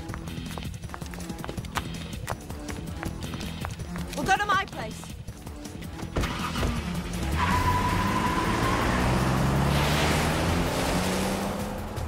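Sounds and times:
footsteps on hard pavement: 0.0s - 6.8s.

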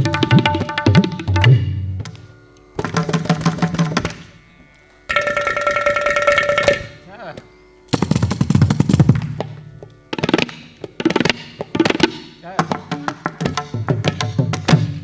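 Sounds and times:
percussion ensemble playing: 0.0s - 2.1s, 2.8s - 4.2s, 5.1s - 7.3s, 7.9s - 15.0s.

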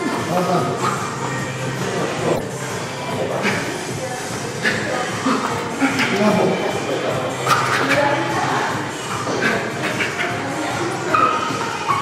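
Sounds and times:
rumbling gym noise: 0.0s - 12.0s.

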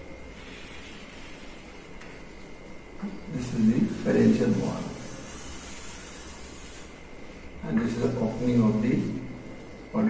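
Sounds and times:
chalk hissing on blackboard: 0.3s - 2.1s, 3.3s - 8.8s.

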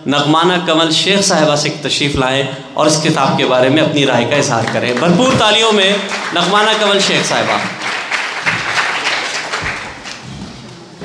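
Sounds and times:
audience applause: 4.5s - 10.4s.

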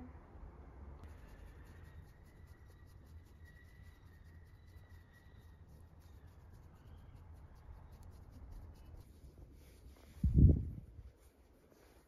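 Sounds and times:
fingers scratching dog fur: 1.0s - 10.1s.

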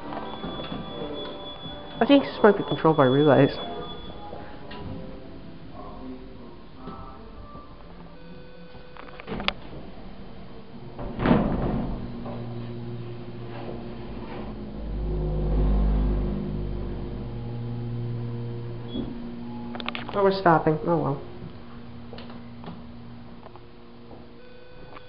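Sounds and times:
elevator doors closing with a knock: 0.0s - 2.0s, 11.0s - 12.8s
hydraulic elevator humming: 9.8s - 25.0s
heavy low rumble: 10.8s - 24.4s.

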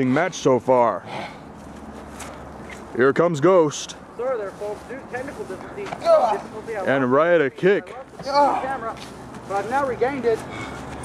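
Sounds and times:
steady outdoor hiss: 0.0s - 11.0s
footsteps on grass and dirt: 1.5s - 11.0s.

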